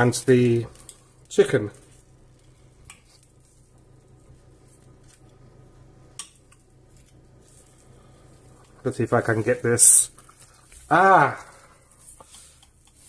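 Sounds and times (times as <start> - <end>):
faint low hum: 0.0 - 12.8.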